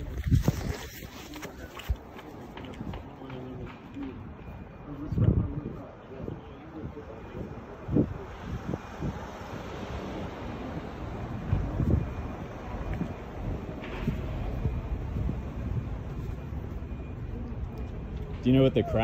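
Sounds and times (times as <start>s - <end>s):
wind buffeting microphone: 0.0s - 16.4s.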